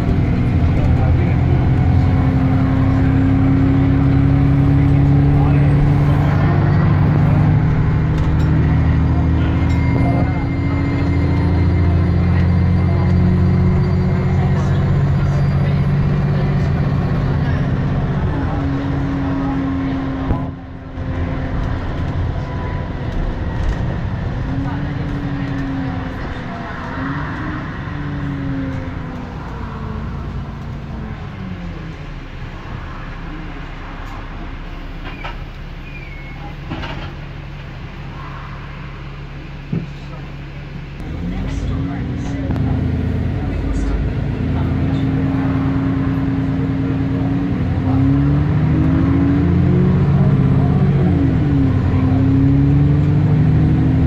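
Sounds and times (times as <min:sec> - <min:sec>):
bus engine whining: 0:00.0 - 0:54.0.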